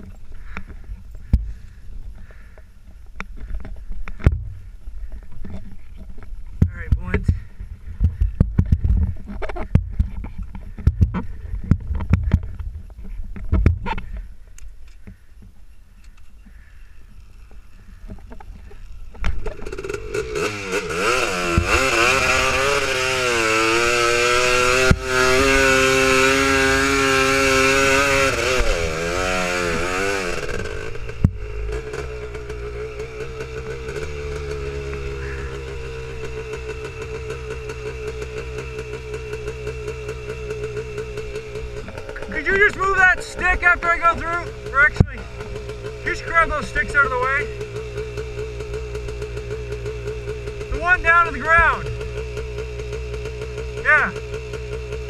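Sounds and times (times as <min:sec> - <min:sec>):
engine knocks: 0:00.0 - 0:14.3, 0:17.9 - 0:55.0
quad engine revving: 0:18.7 - 0:55.0.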